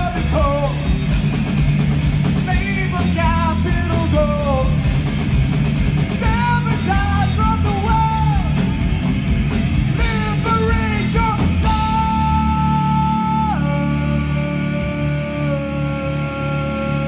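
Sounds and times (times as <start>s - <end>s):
bass guitar: 0.0s - 17.0s
distorted electric guitar: 0.0s - 17.0s.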